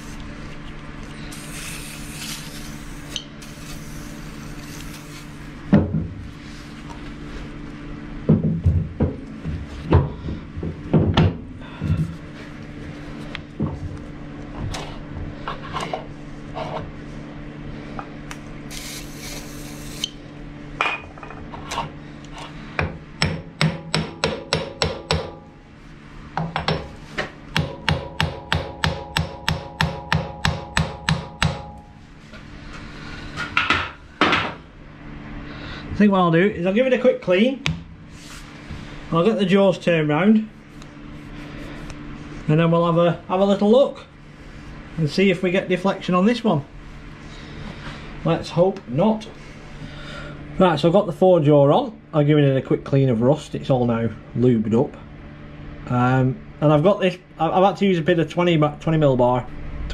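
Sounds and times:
aerosol spray hissing: 1.3 - 5.4, 18.7 - 20.1.

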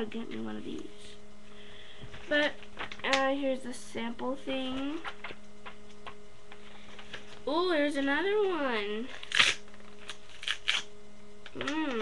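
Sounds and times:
magazine paper rustling: 2.1 - 3.2, 4.8 - 10.9.

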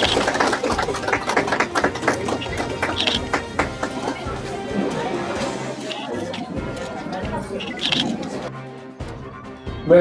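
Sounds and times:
crowd clapping: 0.0 - 4.6.

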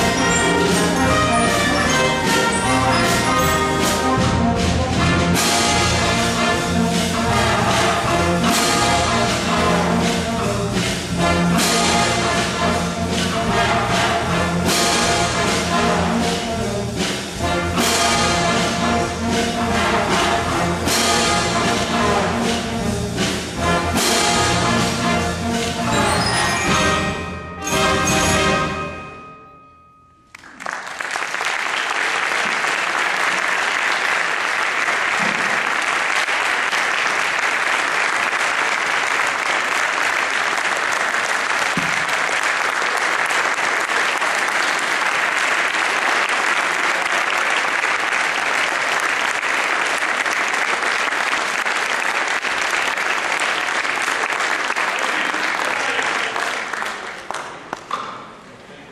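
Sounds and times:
audience applauding: 30.3 - 58.2.

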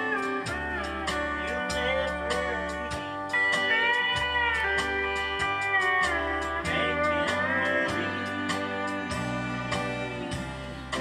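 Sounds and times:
band track with bass and beat: 0.0 - 11.0
pedal steel guitar melody: 0.0 - 11.0.

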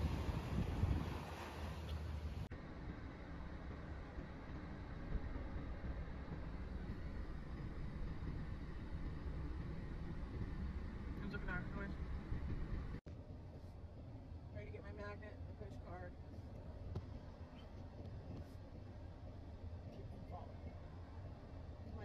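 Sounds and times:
low idle hum: 0.0 - 22.0
road and engine rumble in car: 0.0 - 22.0.

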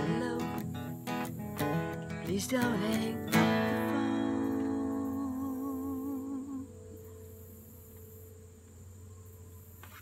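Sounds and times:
acoustic guitar ringing: 0.0 - 9.2
high-pitched insect buzz: 0.0 - 10.0.

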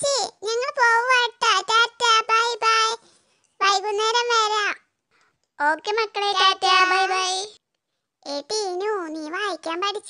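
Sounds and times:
high child-like voice singing: 5.8 - 7.6.

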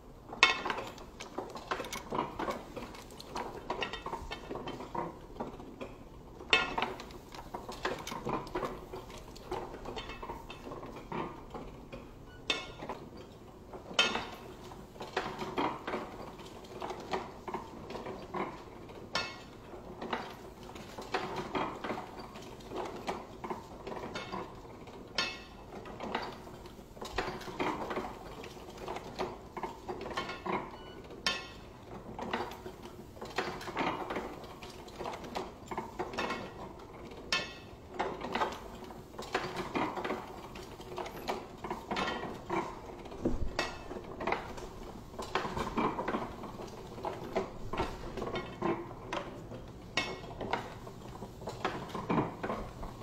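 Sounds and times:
letterpress clacking and clicking: 0.2 - 53.0.

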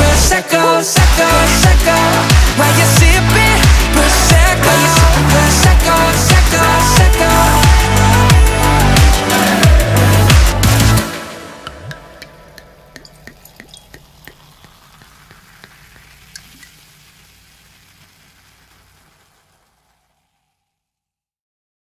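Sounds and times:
music: 0.0 - 12.5
crackling hiss with small pops: 11.7 - 20.9.

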